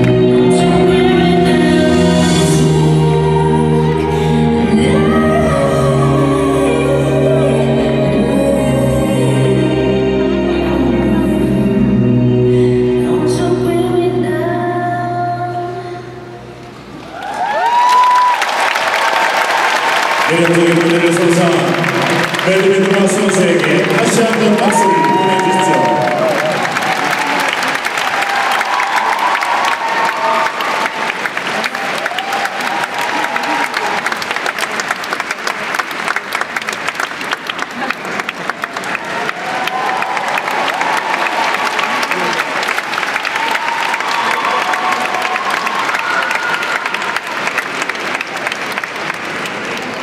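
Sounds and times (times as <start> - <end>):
audience applauding: 17.0 - 50.0.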